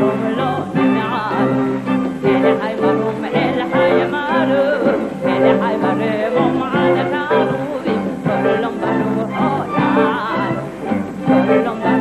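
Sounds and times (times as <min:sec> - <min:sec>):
instrumental accompaniment: 0:00.0 - 0:12.0
woman singing with vibrato: 0:00.0 - 0:12.0.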